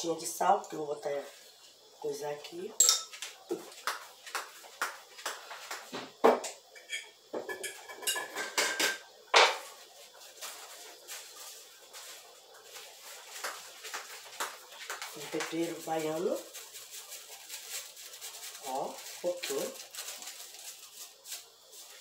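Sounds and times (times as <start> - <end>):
dishes knocking and clinking: 2.8 - 9.7.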